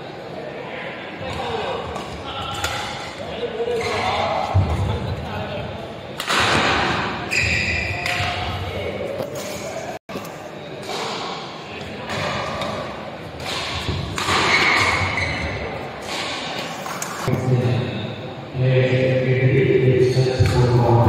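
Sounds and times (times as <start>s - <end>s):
shoes squeaking on court: 7.3s - 8.5s, 14.5s - 15.7s.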